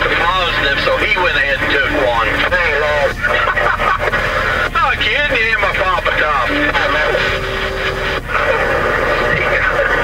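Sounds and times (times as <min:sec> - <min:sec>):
radio hiss: 0:00.0 - 0:10.0
steady tone: 0:00.0 - 0:10.0
voices over two-way radio: 0:00.0 - 0:10.0.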